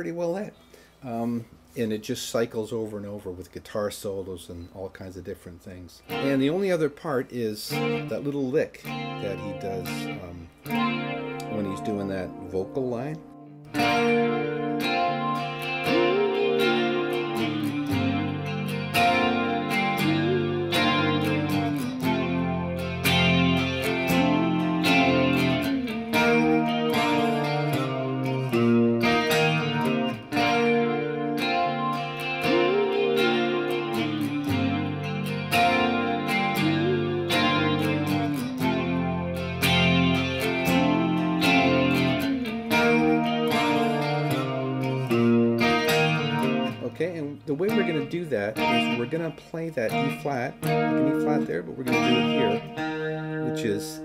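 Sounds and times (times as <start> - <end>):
electric guitar chords and licks: 6.0 - 6.8, 7.6 - 54.0.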